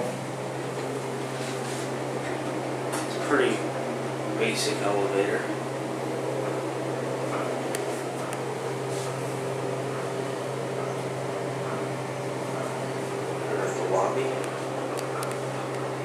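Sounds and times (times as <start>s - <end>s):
elevator car humming: 0.0s - 16.0s.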